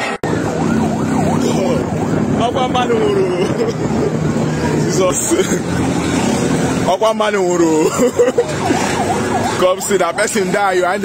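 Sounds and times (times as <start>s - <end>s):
vehicle siren yelping: 0.0s - 5.2s, 8.0s - 11.0s.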